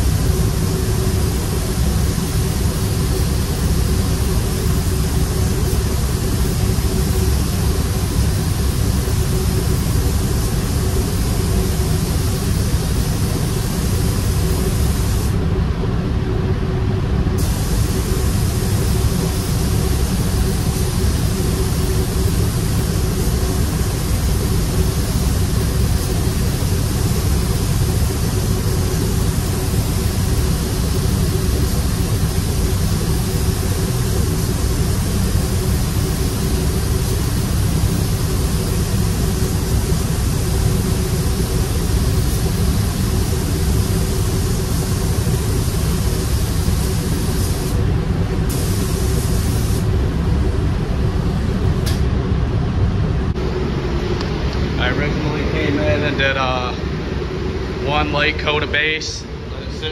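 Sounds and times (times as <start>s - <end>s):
spray gun hissing: 0.0s - 15.4s, 17.4s - 47.8s, 48.5s - 49.9s
ventilation rumble and hum: 0.0s - 59.9s.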